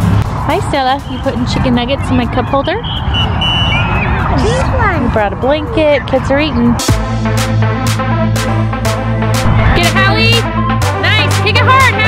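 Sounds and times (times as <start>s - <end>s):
people talking: 0.5s - 2.8s, 4.4s - 6.8s, 9.6s - 10.4s
low background rumble: 9.4s - 10.6s.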